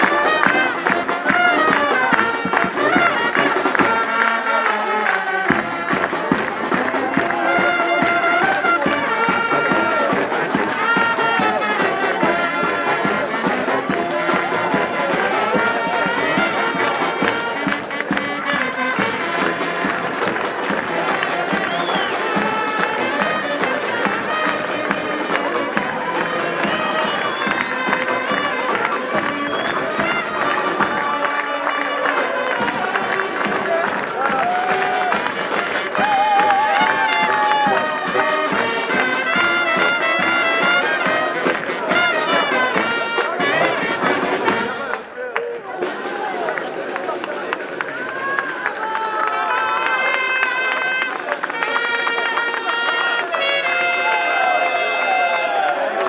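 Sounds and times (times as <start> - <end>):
brass band playing lively tune: 0.0 - 56.0
crowd cheering: 0.0 - 56.0.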